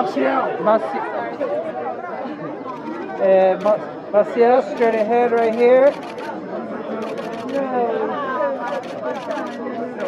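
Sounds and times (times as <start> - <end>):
voices chattering: 0.0 - 10.0.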